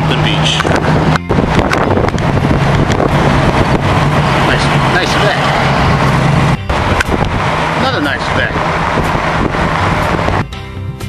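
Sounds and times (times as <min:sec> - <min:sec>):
road traffic: 0:00.0 - 0:11.0
wind buffeting microphone: 0:00.0 - 0:11.0.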